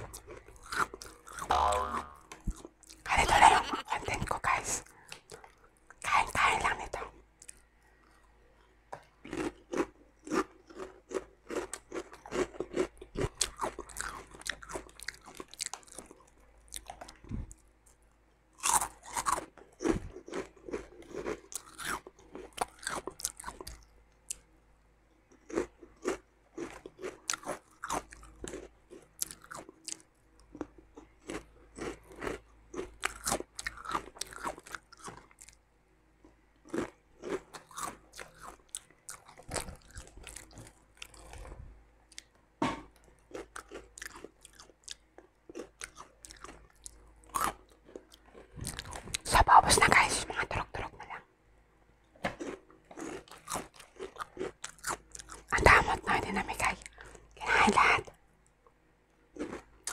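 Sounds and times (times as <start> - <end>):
crunching and chewing snack: 0.0 - 24.6, 25.2 - 35.6, 36.2 - 51.2, 52.2 - 58.6, 59.2 - 59.9.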